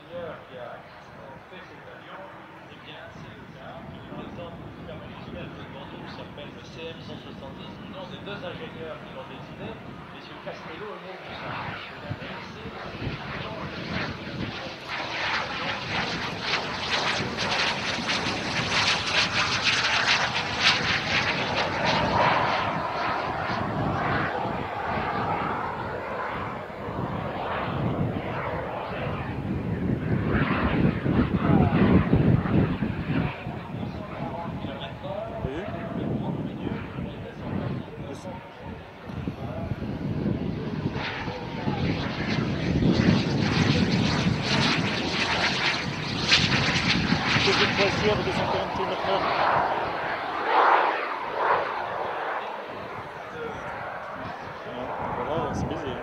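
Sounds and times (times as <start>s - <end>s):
jet aircraft passing with whine: 0.0s - 56.0s.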